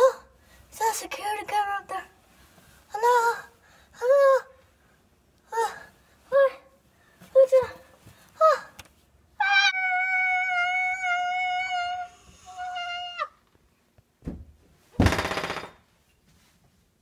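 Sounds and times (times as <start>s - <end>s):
boy wailing: 9.4s - 13.4s.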